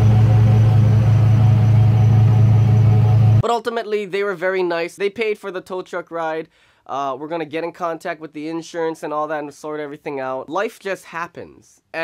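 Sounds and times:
truck engine idling: 0:00.0 - 0:03.4.

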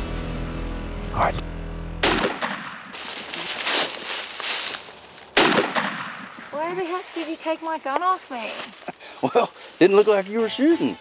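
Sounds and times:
shotgun blasts: 0:02.0 - 0:03.0, 0:05.4 - 0:06.4.

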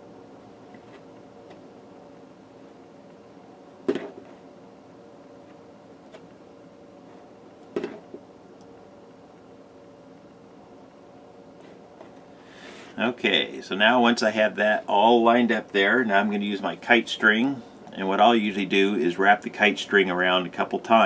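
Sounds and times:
low room hum: 0:00.0 - 0:21.0.

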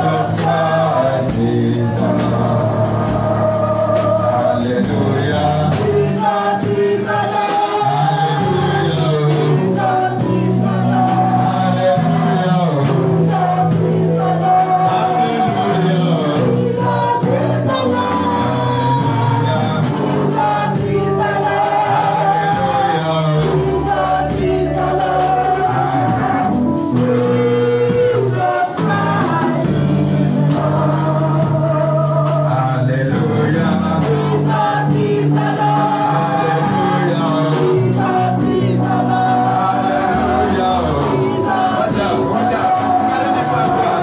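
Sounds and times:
bass line: 0:00.0 - 0:44.0
group singing gospel music: 0:00.0 - 0:44.0
steady beat: 0:00.0 - 0:44.0.

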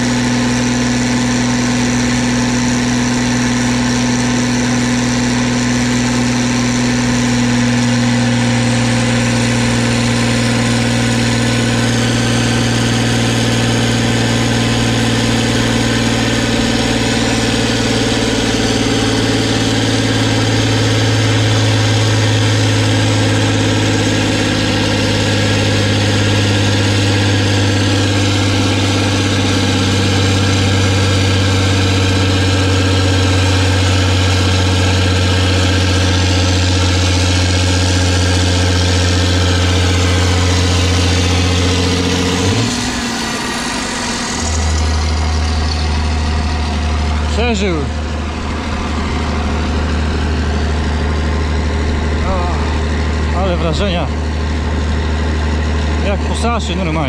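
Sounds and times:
tractor diesel engine running: 0:00.0 - 0:57.0.

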